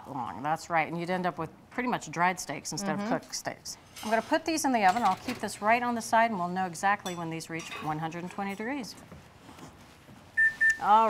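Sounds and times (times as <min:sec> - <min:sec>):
thermometer alarm high beeps: 0:10.4 - 0:11.0.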